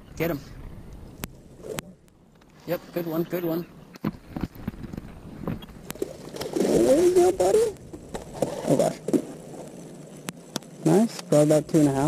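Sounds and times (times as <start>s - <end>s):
wind rumbling on microphone: 0.0s - 2.2s, 4.0s - 9.4s.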